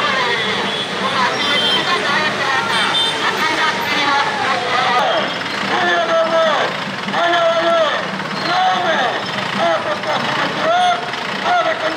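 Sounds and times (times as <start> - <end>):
street and vehicle noise: 0.0 - 11.9
person calling out drawn-out phrases: 3.5 - 11.9.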